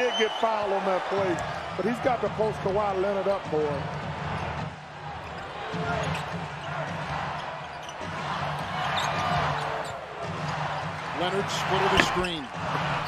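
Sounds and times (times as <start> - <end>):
arena crowd noise: 0.0 - 13.0.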